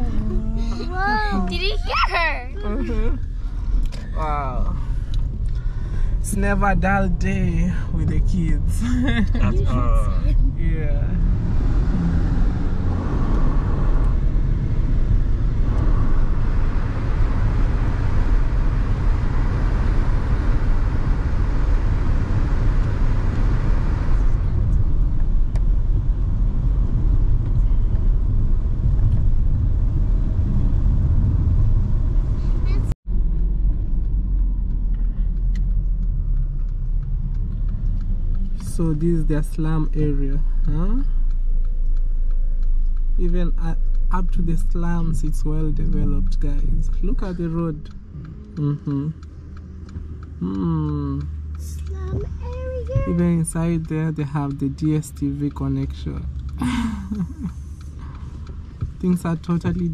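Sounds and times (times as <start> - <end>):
car road rumble: 0.0 - 59.9.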